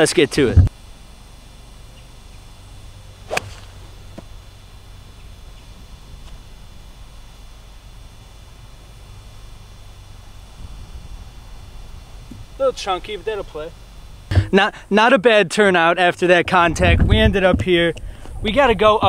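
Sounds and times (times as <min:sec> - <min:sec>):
outdoor background noise: 0:00.0 - 0:19.0
golf club hitting ball: 0:03.2 - 0:04.4.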